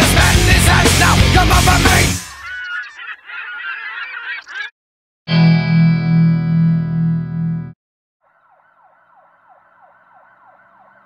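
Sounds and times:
heavy metal music: 0.0 - 2.4
high-pitched cartoon calls: 2.2 - 4.7.

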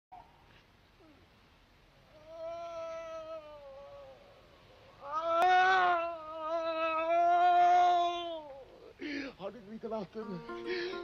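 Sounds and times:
man wailing in pain: 2.2 - 4.2, 5.0 - 9.0.

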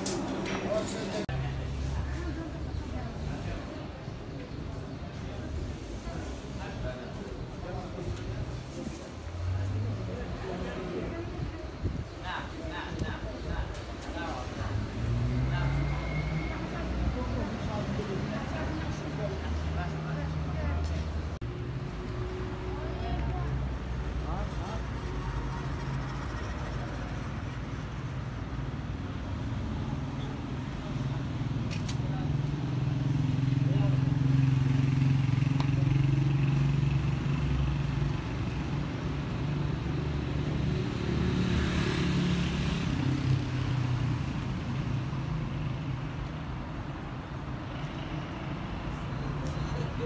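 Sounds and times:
car engines passing: 0.0 - 50.0.

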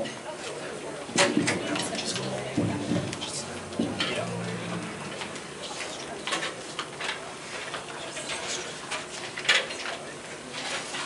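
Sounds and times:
indistinct voices: 1.2 - 7.3.

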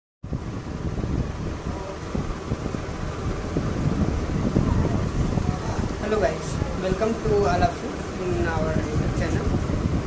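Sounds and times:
wind buffeting a microphone: 0.2 - 10.0.

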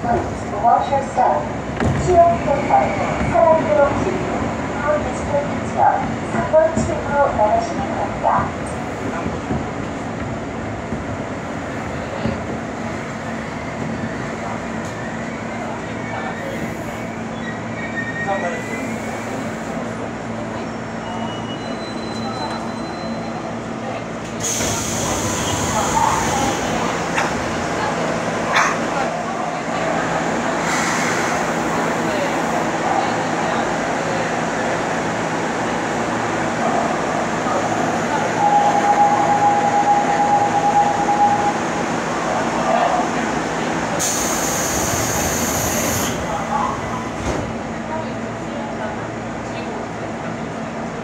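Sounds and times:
subway train equipment humming: 0.0 - 51.0.

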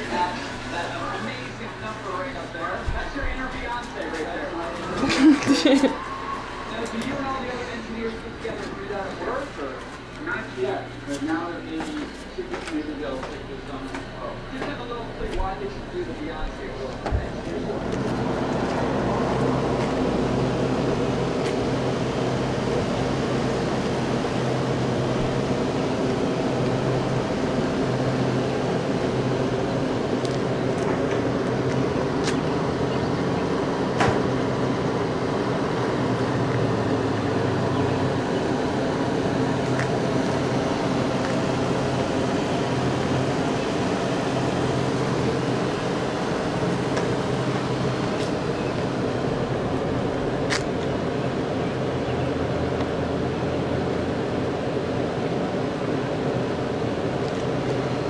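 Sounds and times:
machine hum: 0.0 - 58.0.

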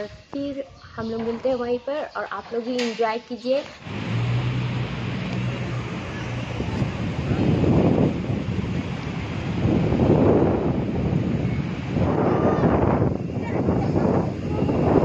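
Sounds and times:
wind rushing over microphone: 3.8 - 15.0.

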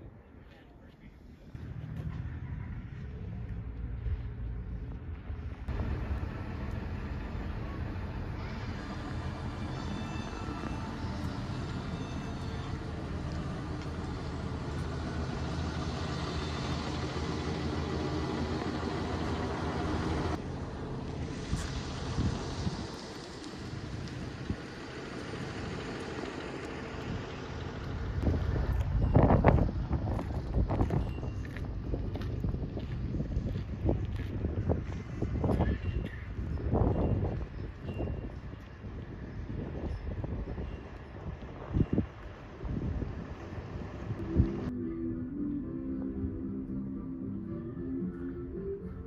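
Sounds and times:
vehicle engine running: 1.6 - 44.7
wind buffeting microphone: 21.2 - 26.2, 26.9 - 44.7.

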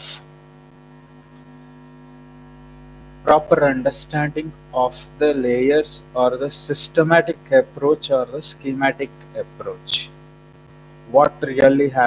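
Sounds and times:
low mains hum: 0.0 - 12.0
person speaking: 3.2 - 10.2, 11.0 - 12.0.

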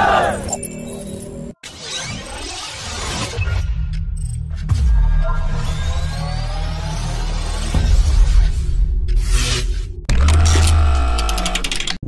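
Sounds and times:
glitchy ticks: 10.1 - 12.0.

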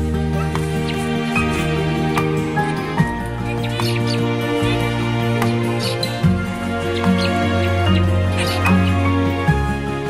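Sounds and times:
background music: 0.0 - 10.0
zebra finch calls: 0.2 - 10.0.

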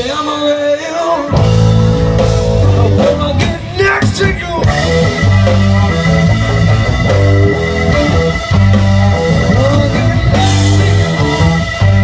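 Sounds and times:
electric guitar bending notes: 1.2 - 12.0
low bass notes: 1.3 - 12.0.

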